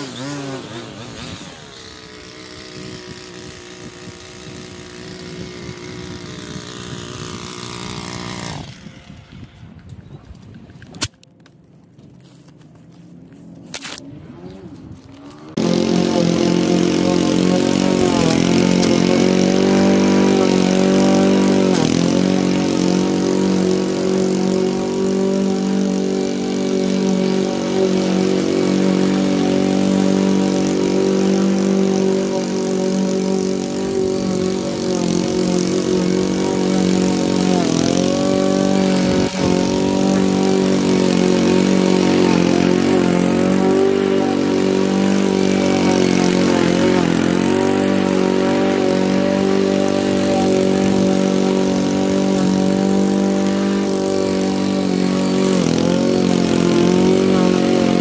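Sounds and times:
lawn mower engine cutting grass: 0.0s - 58.0s.

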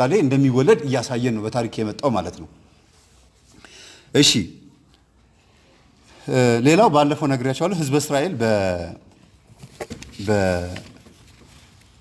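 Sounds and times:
man lecturing: 0.0s - 2.7s, 4.1s - 4.8s, 6.1s - 9.2s, 10.0s - 11.0s.

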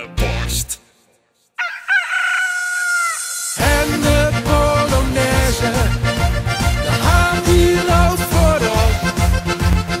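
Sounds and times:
rooster crowing: 1.6s - 3.6s.

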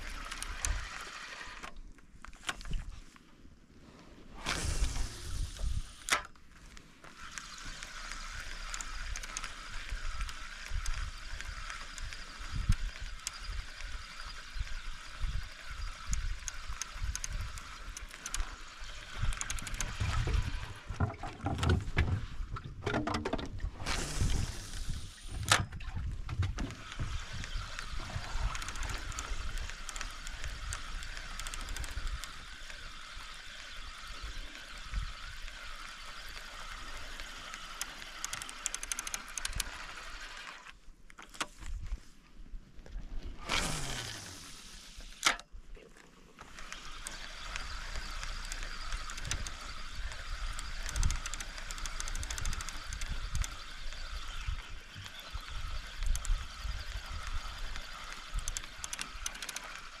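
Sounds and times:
fishing reel spool whirring: 0.0s - 1.8s, 4.4s - 22.5s, 23.8s - 40.8s, 43.2s - 60.0s
sharp click: 4.5s - 6.4s, 37.8s - 39.7s, 45.2s - 45.5s, 46.7s - 54.0s, 58.1s - 59.8s
wind rumble on microphone: 19.0s - 29.7s.

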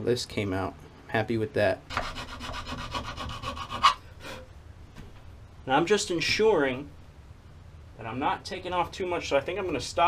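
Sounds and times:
hand file rasping on metal: 1.9s - 4.0s.

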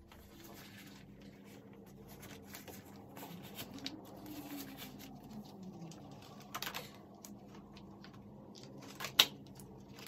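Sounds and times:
crackling of plastic sheet handling: 0.0s - 10.0s.

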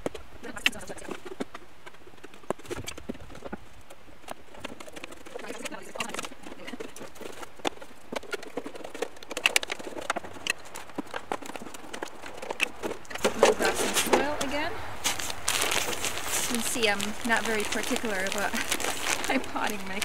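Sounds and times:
woman speaking: 0.4s - 1.2s, 5.4s - 6.9s, 13.2s - 14.8s, 16.5s - 20.0s.

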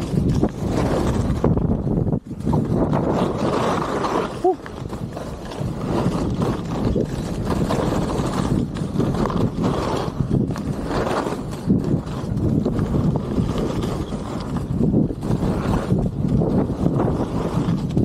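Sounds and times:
skis scraping over snow: 0.0s - 18.0s
wind buffeting microphone: 0.0s - 18.0s.

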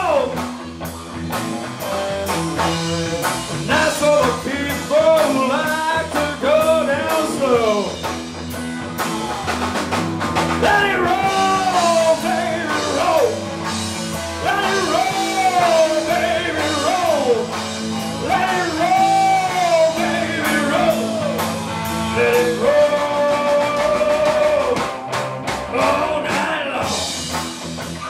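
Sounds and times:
man singing: 0.0s - 0.4s, 3.6s - 8.1s, 10.6s - 13.7s, 14.3s - 25.0s, 25.7s - 27.1s
drum kit beat: 0.0s - 28.0s
electric guitars: 0.0s - 28.0s.

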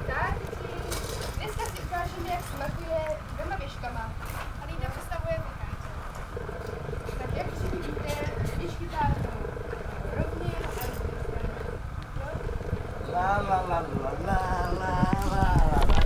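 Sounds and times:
wind rumble on microphone: 0.0s - 16.0s.

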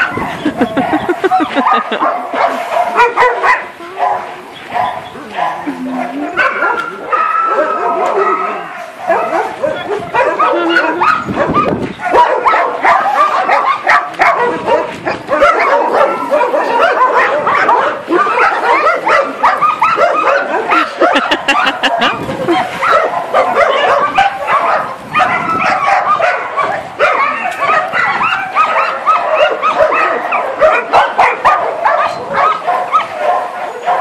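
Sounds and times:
dogs whining: 0.0s - 2.2s, 3.9s - 34.0s
dogs barking: 0.0s - 34.0s.

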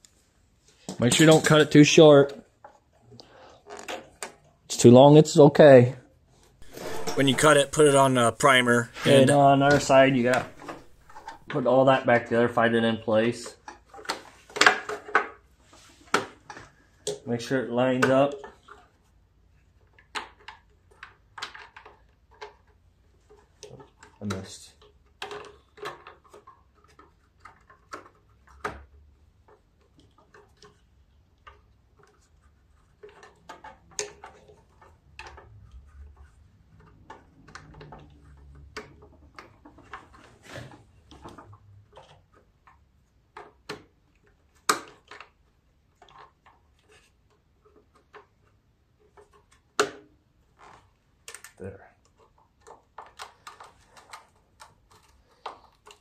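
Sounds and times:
plastic and metal parts clicking: 50.6s - 56.0s.

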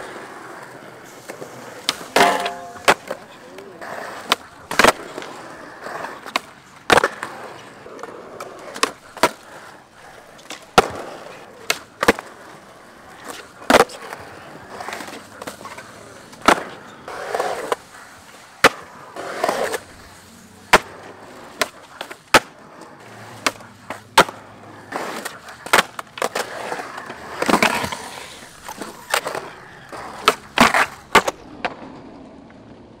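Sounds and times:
skateboard scraping on ledges: 0.0s - 33.0s
skateboard wheels rolling: 0.0s - 33.0s
skateboard cracks from tail pops: 1.2s - 5.3s, 10.4s - 12.5s, 20.7s - 22.6s, 30.2s - 33.0s.

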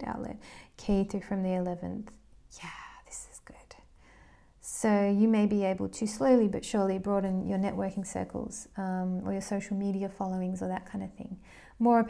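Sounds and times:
woman speaking: 0.0s - 3.9s, 4.6s - 12.0s
soft breath: 0.4s - 0.8s, 3.8s - 4.6s, 11.4s - 11.8s.

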